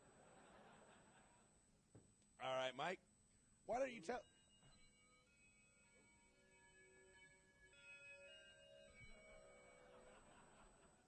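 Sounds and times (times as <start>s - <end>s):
faint steady tones: 0.0s - 11.0s.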